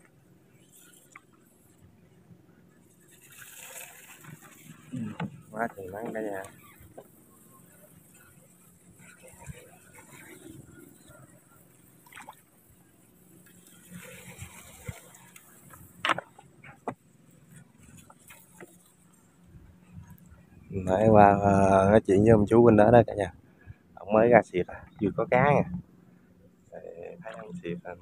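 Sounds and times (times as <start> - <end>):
water lapping around boat: 0.0 - 21.1.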